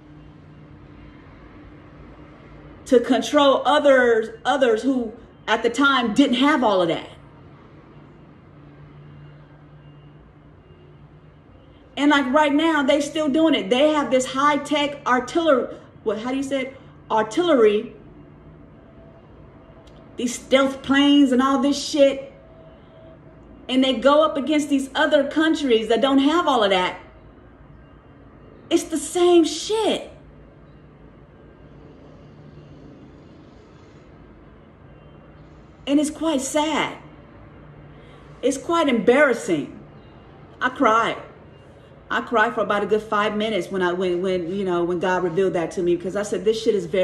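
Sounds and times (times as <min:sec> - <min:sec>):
faint hum: 0:00.0 - 0:47.0.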